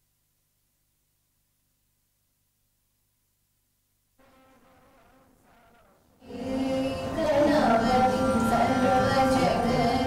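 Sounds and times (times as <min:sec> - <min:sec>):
faint music with buzzy tone: 0:02.1 - 0:10.0.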